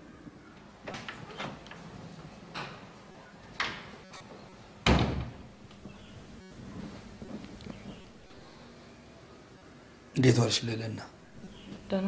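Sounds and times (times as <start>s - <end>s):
wooden door thudding shut: 4.8s - 5.6s.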